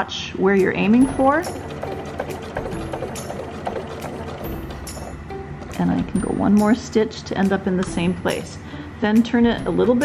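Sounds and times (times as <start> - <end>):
background music: 0.0 - 10.0
sewing machine stitching: 0.9 - 6.2.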